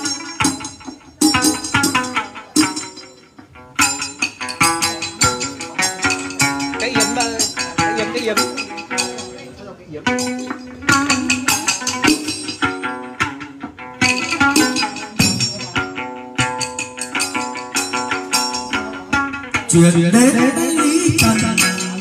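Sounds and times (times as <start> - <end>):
drum: 0.0 - 22.0
plucked lute: 0.0 - 22.0
person singing a chant: 19.7 - 22.0.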